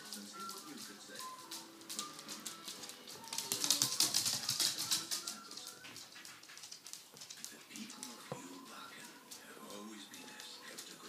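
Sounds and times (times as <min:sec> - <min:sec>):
dog claws clicking on wooden floor: 0:00.0 - 0:11.0.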